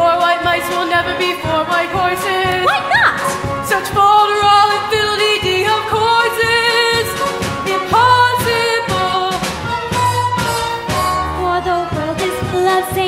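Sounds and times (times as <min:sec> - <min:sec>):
show tune singing with accompaniment: 0:00.0 - 0:13.0.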